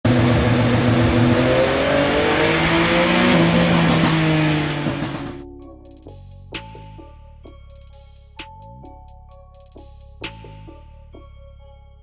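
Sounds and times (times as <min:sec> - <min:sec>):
motorcycle engine running loud: 0:00.1 - 0:05.4.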